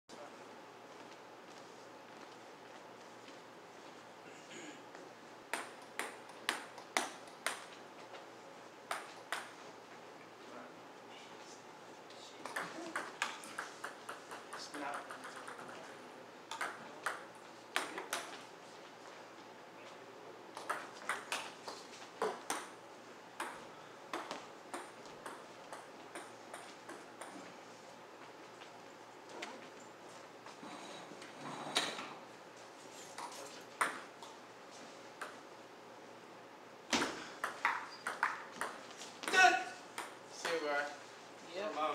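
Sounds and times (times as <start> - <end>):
table tennis ball bouncing: 5.5 - 7.7, 8.9 - 9.6, 12.4 - 15.9, 16.5 - 18.4, 20.5 - 22.8, 23.4 - 27.5, 33.2 - 34.4, 36.9 - 40.7.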